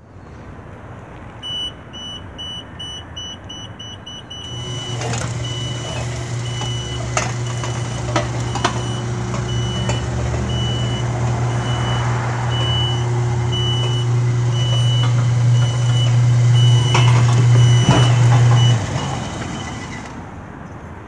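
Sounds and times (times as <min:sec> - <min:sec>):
warning beeper short beeps: 0:01.4 - 0:04.7
clunks: 0:03.4 - 0:20.3
gate motor humming: 0:04.3 - 0:20.3.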